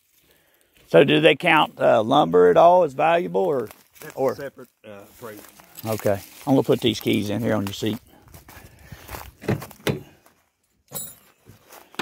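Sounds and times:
footsteps through grass: 0:00.0 - 0:02.0, 0:03.0 - 0:10.5
grass rustling: 0:00.0 - 0:10.4.

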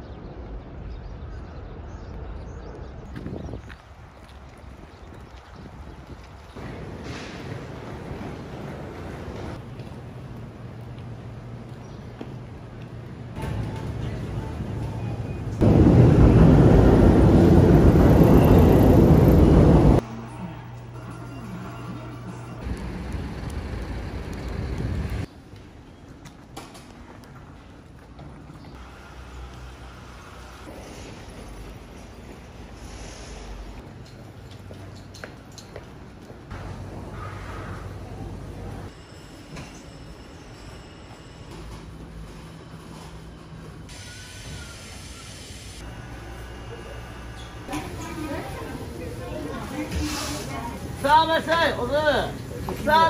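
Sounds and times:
street background noise: 0:00.0 - 0:53.0.

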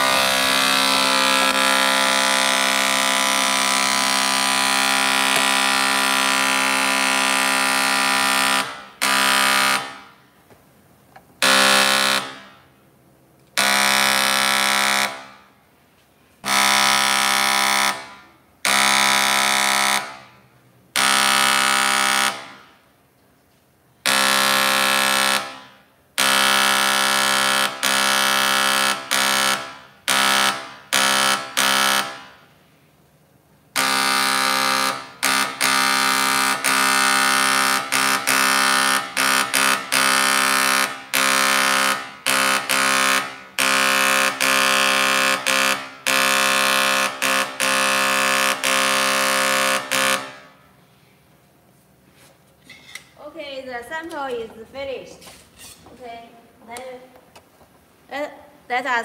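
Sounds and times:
engraving stylus buzzing on metal: 0:00.0 - 0:09.9.

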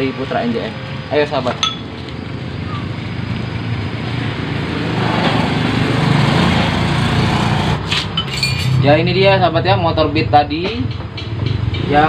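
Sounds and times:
small engine running: 0:02.0 - 0:07.8.

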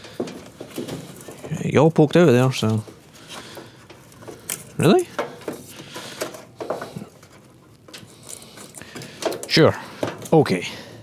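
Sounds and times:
plastic handling clicks and rustles: 0:00.0 - 0:10.6.

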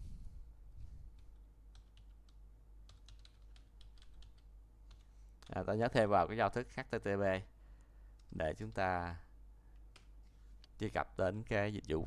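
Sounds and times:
typing on computer keyboard: 0:01.2 - 0:05.0.

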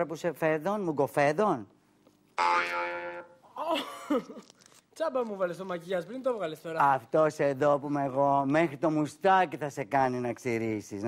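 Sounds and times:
buzzy comic tone: 0:02.4 - 0:03.5.

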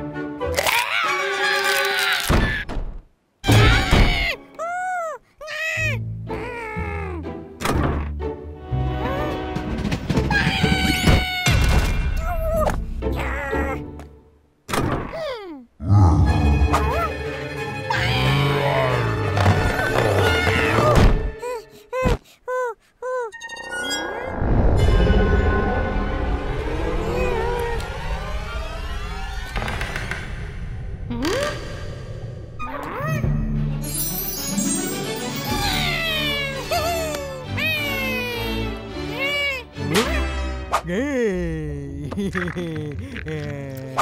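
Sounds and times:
background music: 0:00.0 - 0:01.9, 0:05.6 - 0:14.6, 0:15.8 - 0:21.9, 0:23.3 - 0:44.0
cartoon character straining cries: 0:00.6 - 0:02.6, 0:03.5 - 0:07.2, 0:20.3 - 0:23.4, 0:35.4 - 0:39.7
cartoon character voice: 0:12.2 - 0:13.8.

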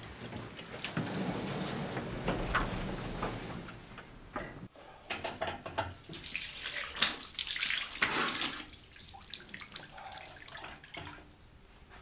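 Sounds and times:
water running from a tap: 0:05.8 - 0:11.1.

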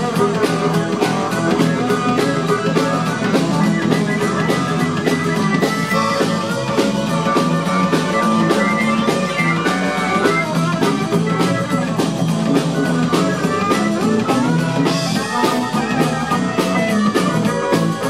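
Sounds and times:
blues band playing: 0:00.0 - 0:18.0
harmonica: 0:00.0 - 0:18.0.

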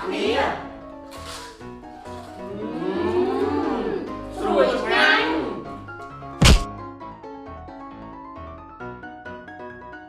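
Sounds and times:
background music: 0:00.0 - 0:10.0
group voices: 0:02.5 - 0:05.8
loud transition thud: 0:06.4 - 0:06.7.

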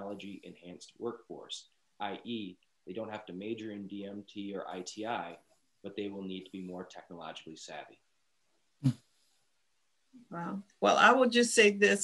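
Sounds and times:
short vocal sound: 0:00.0 - 0:05.3, 0:05.9 - 0:07.8.

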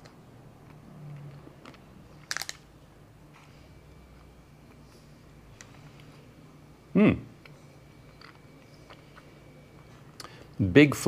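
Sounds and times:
plastic wrapper crinkling: 0:02.2 - 0:02.6.

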